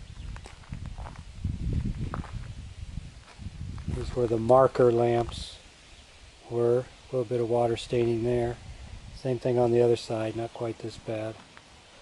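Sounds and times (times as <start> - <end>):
footsteps on gravel: 0.2 - 2.6, 3.2 - 5.4.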